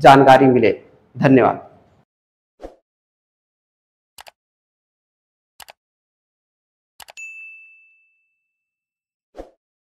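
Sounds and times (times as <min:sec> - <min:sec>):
notification bell ding: 0:07.1 - 0:08.8.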